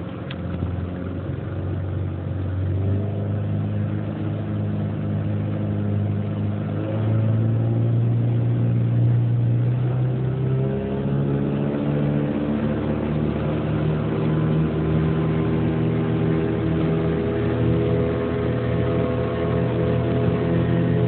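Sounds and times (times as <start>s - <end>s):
outboard motor running: 0.0s - 21.0s.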